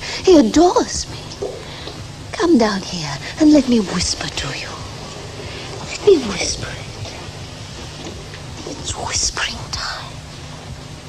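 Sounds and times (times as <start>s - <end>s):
steady low hum: 0.0s - 11.0s
woman whispering: 5.8s - 7.2s.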